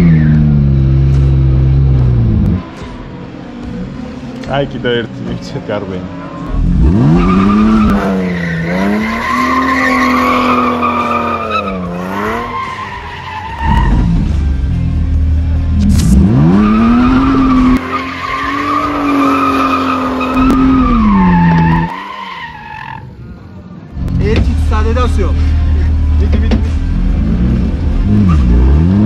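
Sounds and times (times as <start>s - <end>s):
car engine revving: 0.0s - 23.2s, 23.9s - 29.0s
tyres skidding: 0.0s - 29.0s.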